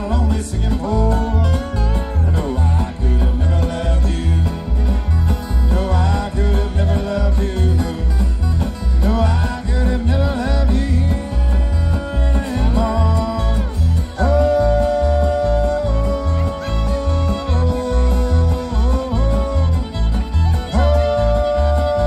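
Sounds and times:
strummed acoustic guitars: 0:00.0 - 0:22.0
upright bass plucking: 0:00.0 - 0:22.0
fiddle playing held notes: 0:11.2 - 0:22.0.

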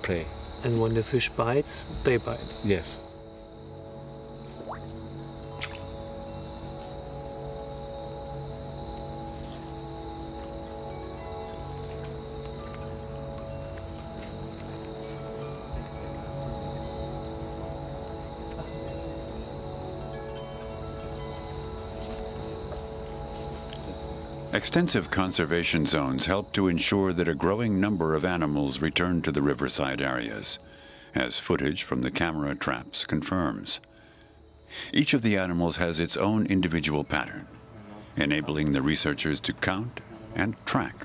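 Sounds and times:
sustained music tones: 0:00.0 - 0:33.7
insects chorus: 0:00.0 - 0:41.0.

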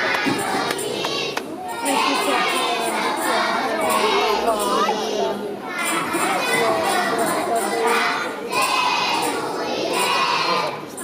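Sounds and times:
audience murmuring: 0:00.0 - 0:11.0
children chattering and calling out: 0:00.0 - 0:11.0.

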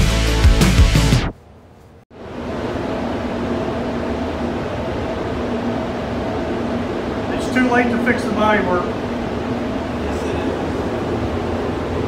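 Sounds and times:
rock music: 0:00.0 - 0:01.3
ventilation fans humming: 0:01.3 - 0:12.0.

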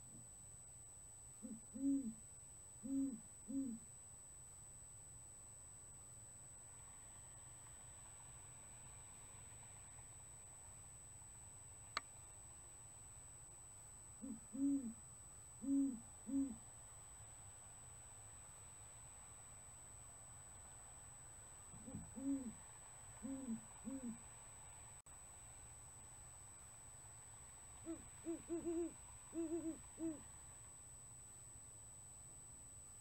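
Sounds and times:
owl hooting: 0:01.4 - 0:02.2, 0:02.8 - 0:03.9, 0:14.2 - 0:16.6, 0:21.8 - 0:24.3, 0:27.8 - 0:30.4.

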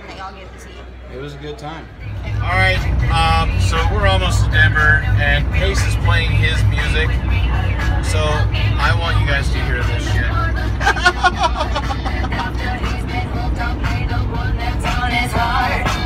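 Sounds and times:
road noise: 0:00.0 - 0:16.0
truck engine drone: 0:00.0 - 0:16.0
music with singing on stereo: 0:01.8 - 0:16.0.

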